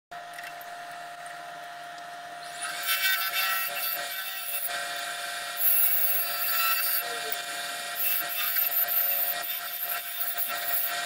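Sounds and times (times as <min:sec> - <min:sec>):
wood lathe motor whine: 0:02.2 - 0:11.0.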